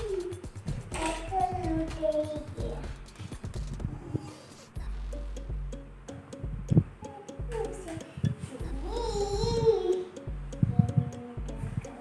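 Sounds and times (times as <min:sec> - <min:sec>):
plastic hula hoop clicking: 0:00.1 - 0:02.2
child vocal sound: 0:07.0 - 0:12.0.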